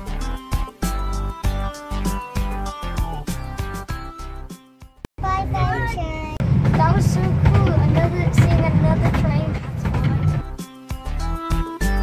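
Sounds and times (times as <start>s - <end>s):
young child talking: 5.2s - 10.4s
railway carriage rumbling on track: 5.4s - 10.6s.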